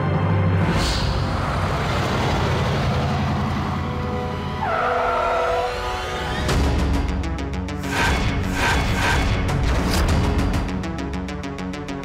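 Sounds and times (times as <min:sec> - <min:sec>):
tyres skidding and squealing: 0:00.6 - 0:06.6.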